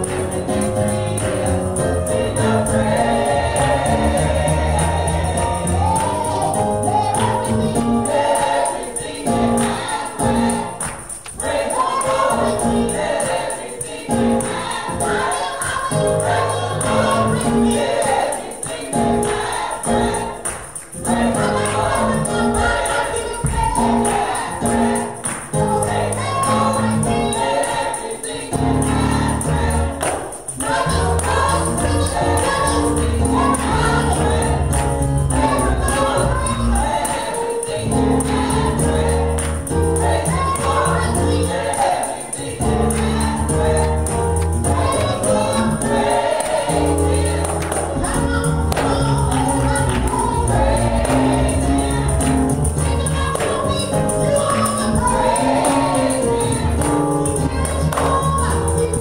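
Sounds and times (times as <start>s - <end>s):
gospel group singing in harmony: 0.0s - 59.0s
keyboard accompaniment: 0.0s - 59.0s
hand claps: 10.7s - 12.3s, 20.4s - 21.0s, 25.0s - 25.7s, 30.0s - 31.5s, 39.4s - 39.8s, 47.4s - 50.3s, 51.0s - 51.4s, 52.2s - 54.8s, 56.8s - 58.4s.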